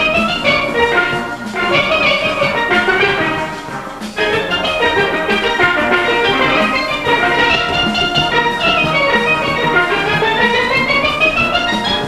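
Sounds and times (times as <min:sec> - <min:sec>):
percussion beat: 0:00.0 - 0:12.0
steel band playing: 0:00.0 - 0:12.0.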